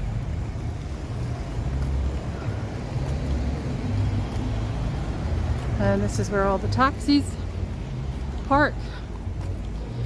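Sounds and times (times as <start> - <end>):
cars on a town street: 0.0 - 10.0.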